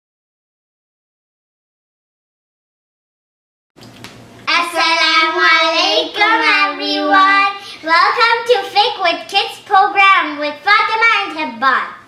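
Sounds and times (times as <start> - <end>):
children singing a chant: 4.6 - 7.6.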